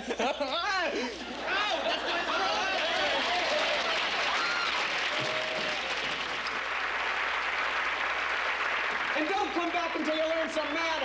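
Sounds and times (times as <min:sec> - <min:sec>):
crowd clapping: 0:02.2 - 0:11.0.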